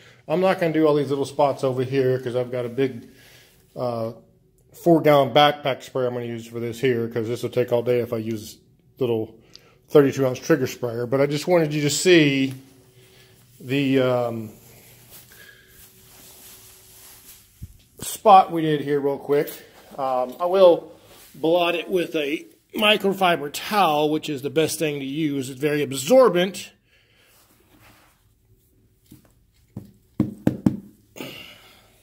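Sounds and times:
faint steady hum: 0:00.0 - 0:32.0
towel rubbing carpet: 0:14.4 - 0:18.1.

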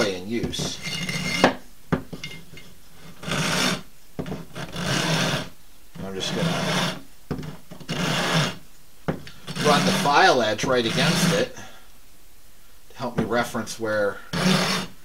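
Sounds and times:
file rasping across bone: 0:00.6 - 0:01.6, 0:03.0 - 0:08.6, 0:09.3 - 0:11.5, 0:14.3 - 0:14.9.

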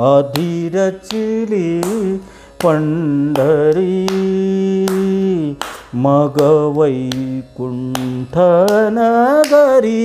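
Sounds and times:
man singing a long note: 0:00.0 - 0:10.0
hands clapping the beat: 0:00.2 - 0:10.0.

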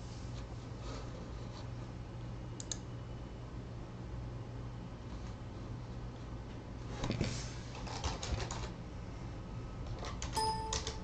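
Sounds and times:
computer keyboard typing: 0:10.0 - 0:11.0.

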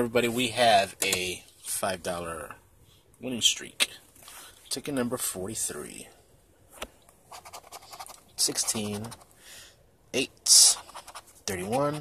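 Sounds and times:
coin scratching ticket: 0:07.3 - 0:09.3, 0:10.5 - 0:12.0.

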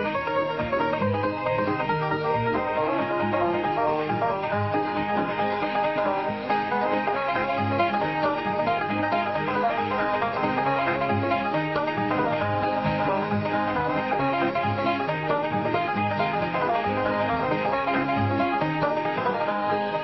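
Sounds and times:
country theme music with banjo: 0:00.0 - 0:20.0.

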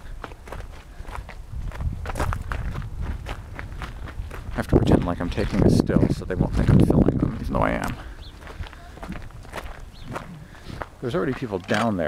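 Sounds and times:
steady low rumble: 0:00.0 - 0:11.3
footsteps on gravel: 0:00.0 - 0:12.0.

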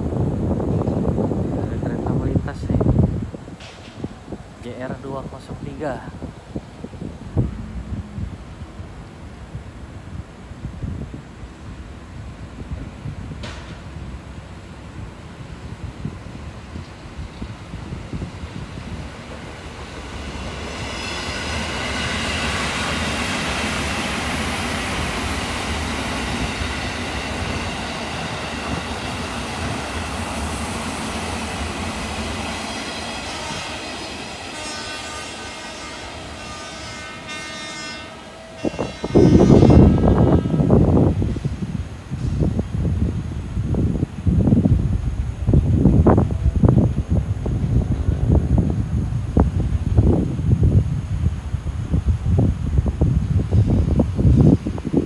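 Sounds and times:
wind buffeting microphone: 0:00.0 - 0:37.2, 0:38.2 - 0:55.0
electric train rolling past: 0:00.0 - 0:55.0
train horn: 0:33.2 - 0:41.2.

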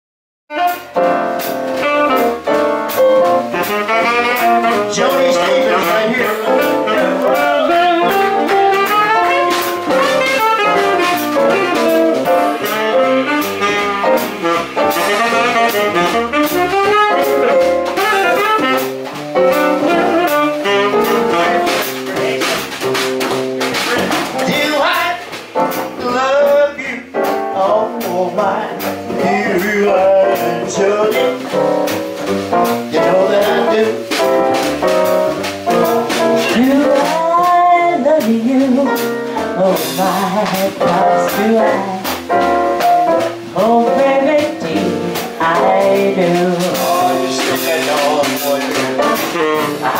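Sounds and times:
jazz with saxophone lead: 0:00.5 - 0:49.9.

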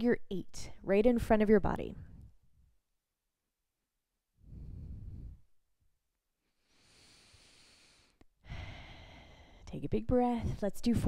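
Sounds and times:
airy breath into microphone: 0:04.4 - 0:05.6, 0:06.6 - 0:09.6.

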